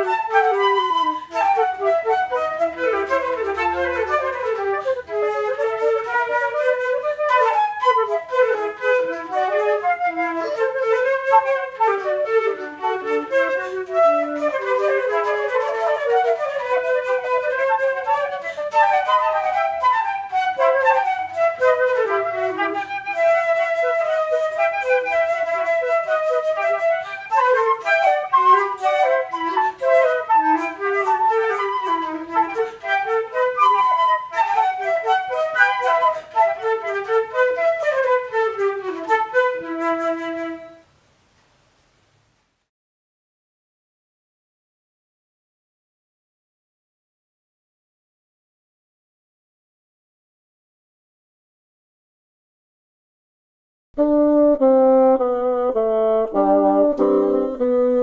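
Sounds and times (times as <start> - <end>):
flute duet: 0.0 - 41.0, 54.0 - 58.0.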